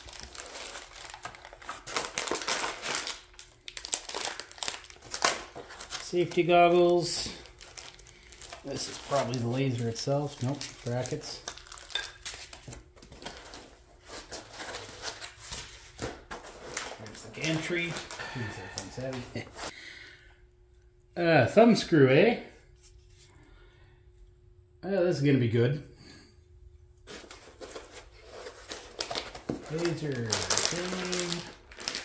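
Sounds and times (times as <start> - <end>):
foam packaging rustling: 0.0 - 19.7, 27.0 - 32.0.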